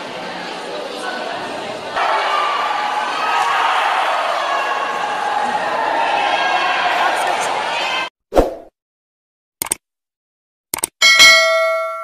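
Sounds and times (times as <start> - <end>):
bell ding: 11.0 - 12.0.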